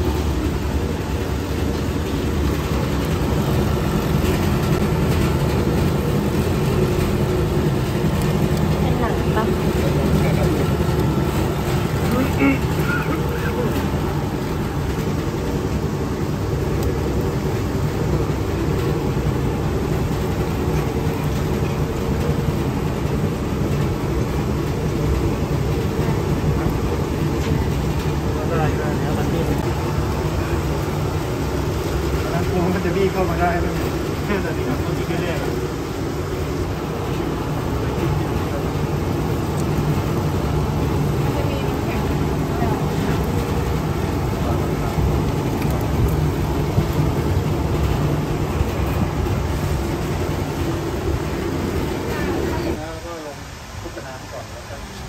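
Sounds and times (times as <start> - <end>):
machine humming: 0.0 - 52.8.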